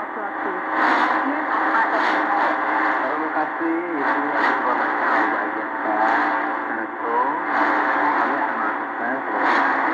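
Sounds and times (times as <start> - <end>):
radio static hiss: 0.0 - 9.9.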